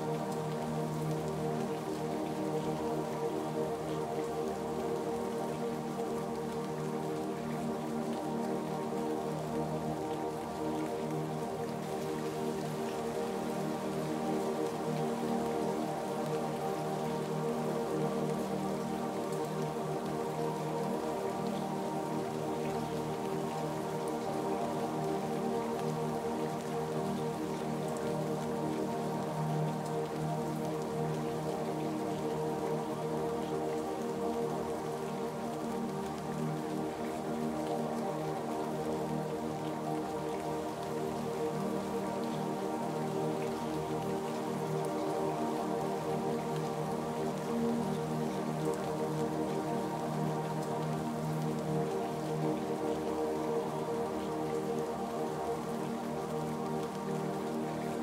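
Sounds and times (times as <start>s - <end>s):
ambient music with held chords: 0.0s - 58.0s
steady rainfall: 0.0s - 58.0s.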